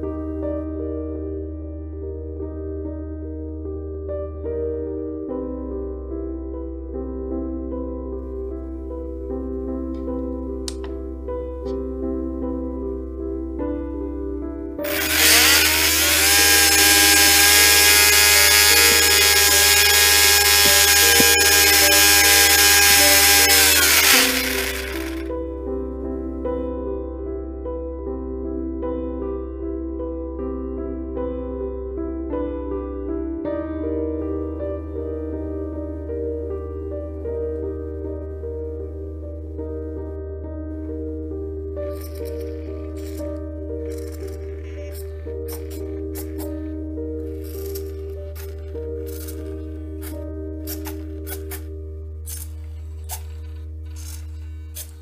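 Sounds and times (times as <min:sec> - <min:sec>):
slow keyboard melody over drone: 0:00.0 - 0:55.0
servos whirring in raspy bursts: 0:14.8 - 0:25.3
small electric motor whining: 0:14.8 - 0:25.3.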